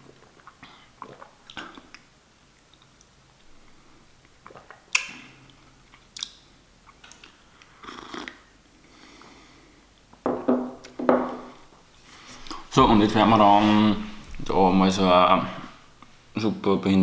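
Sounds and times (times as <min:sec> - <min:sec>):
person slurping coffee: 0:07.8 - 0:08.4.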